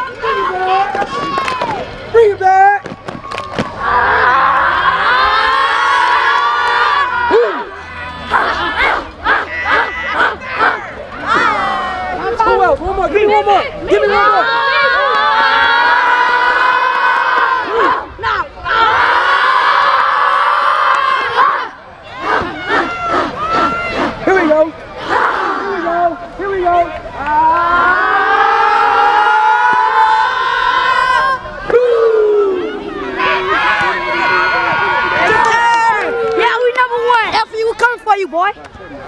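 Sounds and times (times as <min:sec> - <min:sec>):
young players chanting and yelling: 0:00.0 - 0:02.8, 0:03.6 - 0:39.0.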